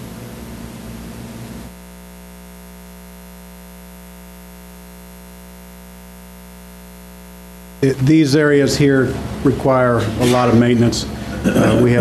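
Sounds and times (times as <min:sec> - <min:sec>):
electrical mains hum and buzz: 0:00.0 - 0:12.0.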